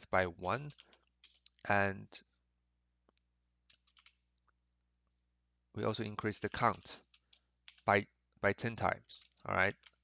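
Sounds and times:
computer keyboard typing clicks: 0.5s - 1.7s, 3.1s - 4.2s, 6.5s - 8.0s, 9.2s - 10.0s.

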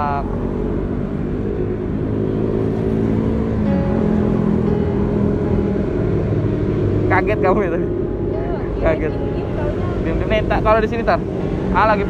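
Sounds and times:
heavy vehicle engine drone: 0.0s - 12.0s.

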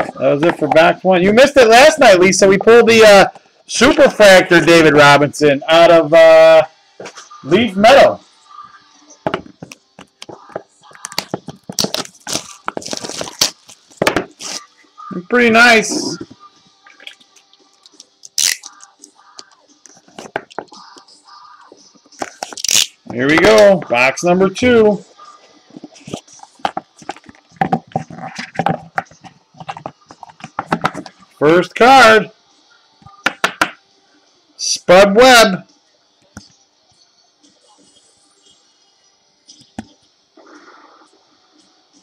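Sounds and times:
cardboard and cards rustling: 9.3s - 14.7s, 18.6s - 21.0s, 21.7s - 24.0s, 24.7s - 31.2s
card packaging crinkling: 10.9s - 14.7s.

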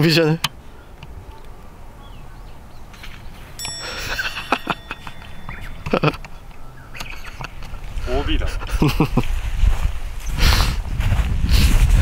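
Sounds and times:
bright bell-like ringing: 3.6s - 7.2s
wind rumble on microphone: 6.8s - 12.0s.

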